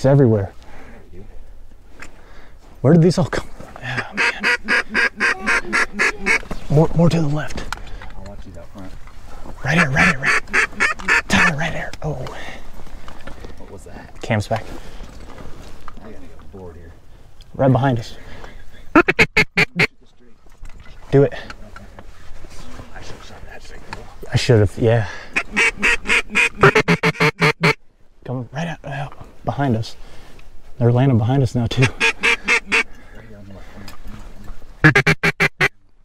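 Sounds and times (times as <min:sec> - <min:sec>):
duck call quacks: 0:04.0 - 0:06.5, 0:09.6 - 0:11.5, 0:18.9 - 0:19.9, 0:25.4 - 0:27.8, 0:31.8 - 0:32.9, 0:34.8 - 0:35.8.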